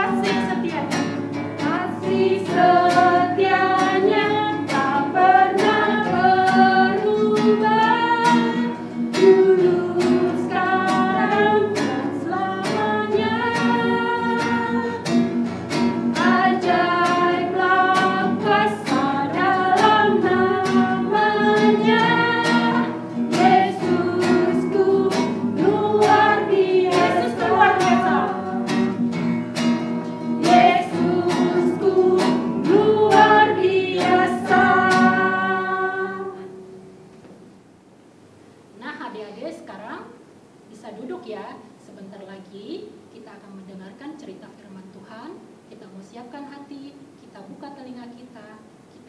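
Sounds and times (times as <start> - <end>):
voices singing together: 0.0 - 36.6
strummed acoustic guitar: 0.0 - 37.0.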